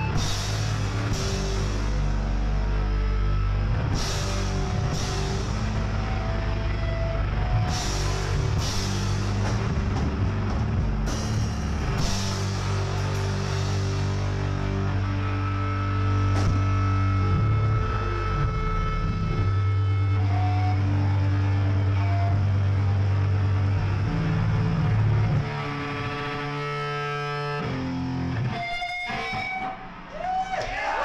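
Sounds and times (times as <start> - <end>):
rock band with distorted guitars: 0.0 - 31.0.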